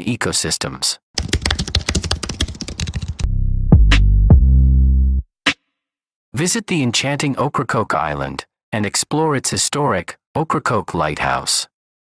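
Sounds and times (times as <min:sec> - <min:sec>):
keyboard typing clicks: 0:01.2 - 0:03.3.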